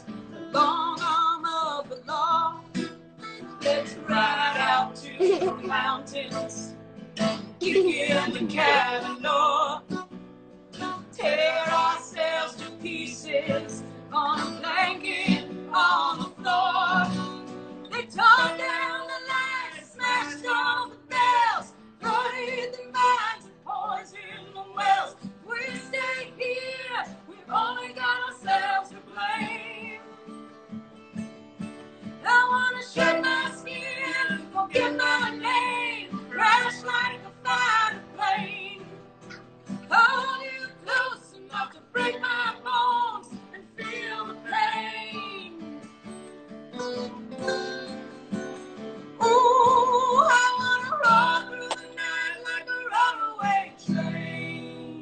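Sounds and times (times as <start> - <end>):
strummed acoustic guitar: 0.0 - 55.0
man and woman singing: 3.6 - 6.7, 7.6 - 10.0, 11.2 - 17.3, 17.9 - 30.1, 32.2 - 39.0, 39.9 - 45.6, 49.2 - 55.0.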